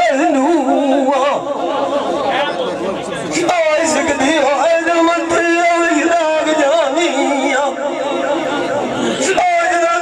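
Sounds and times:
man singing into a microphone: 0:00.0 - 0:02.0, 0:03.3 - 0:10.0.

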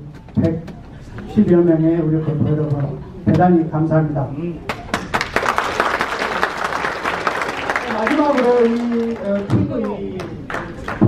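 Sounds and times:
audience applauding: 0:04.7 - 0:11.0.

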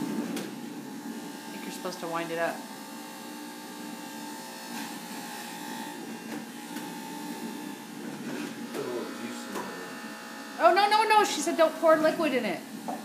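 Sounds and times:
electric juicer motor humming: 0:00.0 - 0:13.0.

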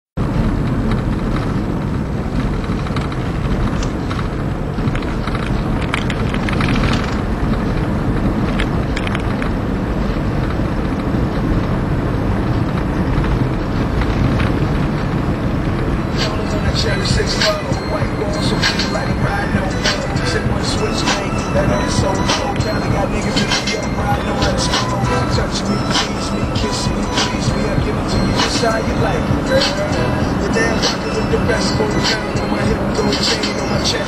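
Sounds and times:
car engine and tyre rumble: 0:00.2 - 0:34.0.

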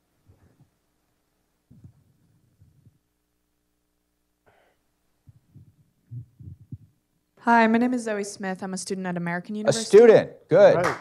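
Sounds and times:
microphone handling thumps: 0:01.7 - 0:03.0, 0:05.2 - 0:07.0.

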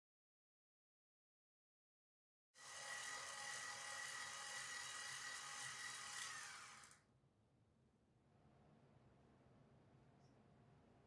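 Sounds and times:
electric stand mixer whining: 0:02.6 - 0:07.0.

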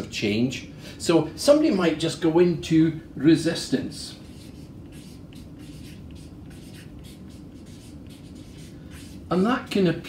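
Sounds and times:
marker scratching on paper: 0:04.1 - 0:09.4.

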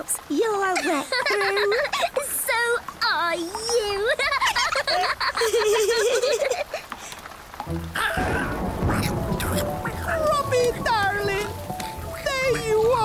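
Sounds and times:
rain patter: 0:00.0 - 0:13.0
light background music: 0:07.6 - 0:13.0.

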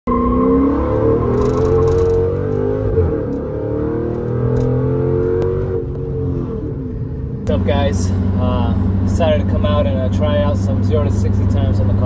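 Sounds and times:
car engine accelerating: 0:00.1 - 0:12.0.

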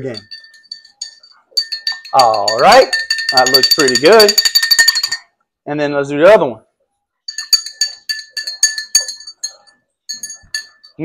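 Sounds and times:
spoon clinking against glass: 0:00.0 - 0:05.3, 0:07.3 - 0:11.0.

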